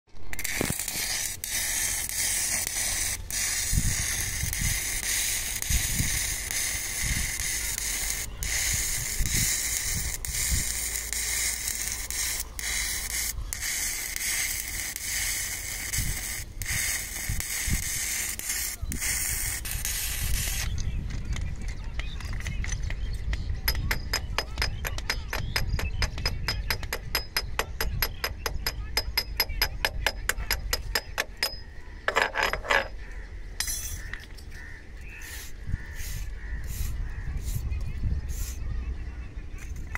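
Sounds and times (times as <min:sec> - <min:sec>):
welding arc crackling and sizzling: 0:00.2 - 0:21.6.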